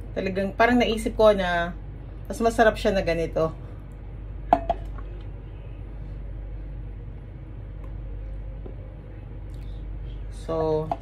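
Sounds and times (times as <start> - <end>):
steady low hum: 0.0 - 11.0
cup clinking against dish: 4.5 - 4.9.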